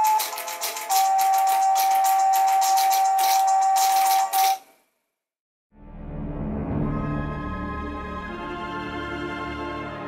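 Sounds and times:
fast rattling beat: 0.0s - 4.6s
tinny electronic tune: 0.0s - 4.6s.

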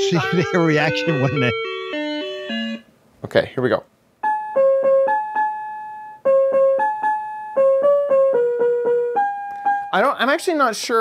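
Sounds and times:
electronic piano tune: 0.0s - 2.9s, 4.2s - 10.1s.

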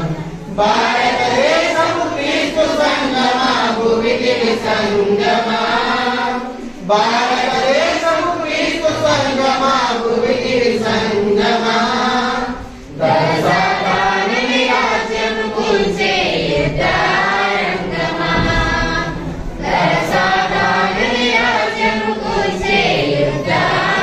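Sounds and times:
congregation singing a hymn: 0.0s - 24.0s.

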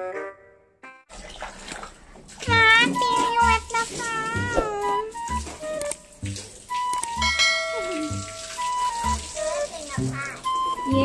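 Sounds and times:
hose water splashing into pool: 1.1s - 11.0s
child's high voice: 2.4s - 5.1s, 9.4s - 11.0s.

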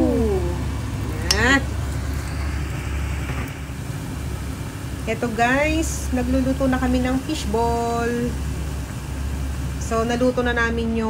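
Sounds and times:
hot oil sizzling: 0.0s - 11.0s
steady low rumble: 0.0s - 11.0s.

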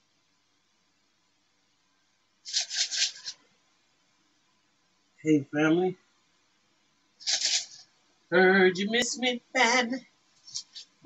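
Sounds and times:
scratchy rubbing strokes: 2.4s - 3.4s, 7.2s - 7.9s, 10.4s - 11.0s.

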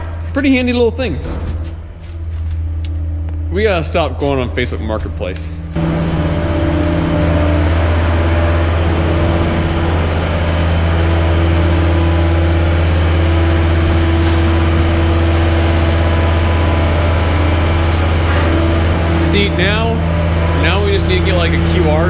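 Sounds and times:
diesel engine running: 0.0s - 22.0s.

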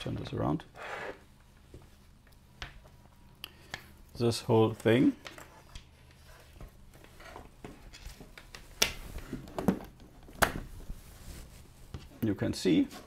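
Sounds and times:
handling cables on wooden desk: 1.1s - 13.0s.

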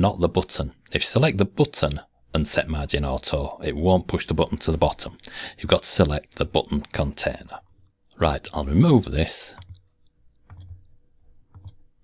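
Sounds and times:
computer mouse clicks: 9.6s - 11.9s.

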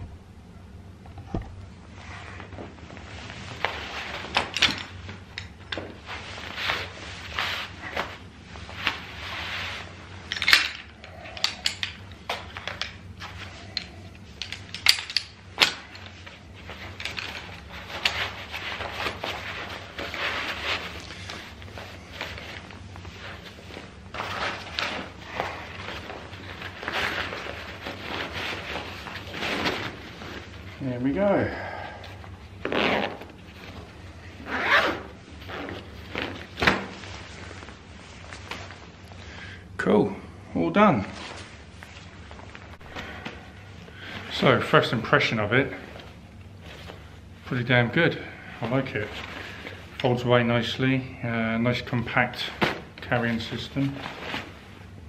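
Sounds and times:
fabric rustling: 1.8s - 10.9s, 11.9s - 39.1s, 41.0s - 45.1s, 45.7s - 48.0s, 52.3s - 55.0s.

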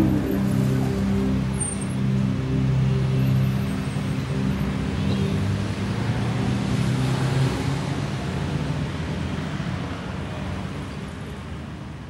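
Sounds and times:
low engine-like drone: 0.0s - 6.7s.

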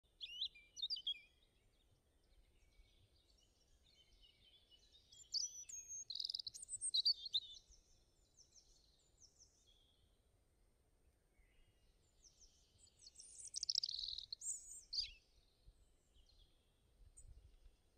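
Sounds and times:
small bird chirping and singing: 0.2s - 1.4s, 2.6s - 9.9s, 12.2s - 15.3s.

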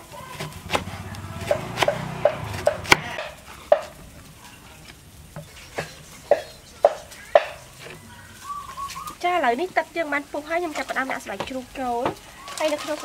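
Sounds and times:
knife chopping on wooden board: 0.4s - 4.0s.

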